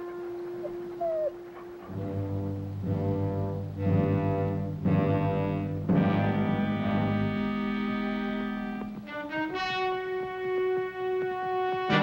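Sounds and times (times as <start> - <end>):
dog whimpering: 0.6 - 1.9.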